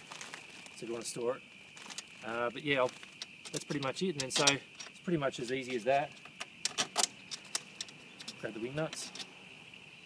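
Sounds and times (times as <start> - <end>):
metal tubes clinking: 1.9 - 9.3.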